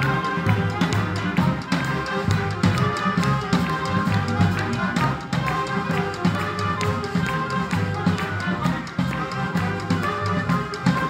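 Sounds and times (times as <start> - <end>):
drum kit beat: 0.0 - 11.0
wind band playing: 0.0 - 11.0.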